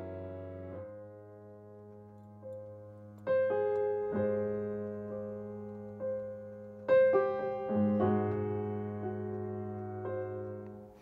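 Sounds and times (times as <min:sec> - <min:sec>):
soft slow piano chords: 0:00.0 - 0:11.0.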